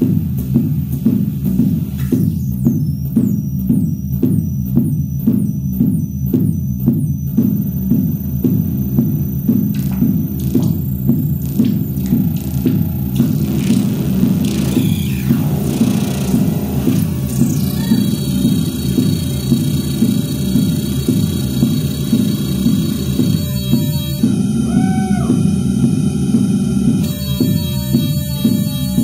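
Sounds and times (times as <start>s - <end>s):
synthesizer pulsing low drone: 0.0s - 29.0s
steady high synth tones: 1.0s - 29.0s
rising and falling tone: 5.3s - 29.0s.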